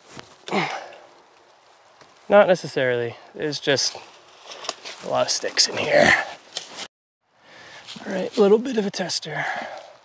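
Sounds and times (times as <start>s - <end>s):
faint outdoor background: 0.0s - 10.0s
person sighing: 0.5s - 1.1s.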